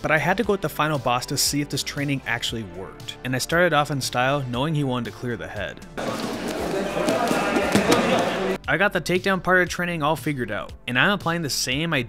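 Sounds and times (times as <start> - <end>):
scuffling on foam mats: 6.0 - 8.6.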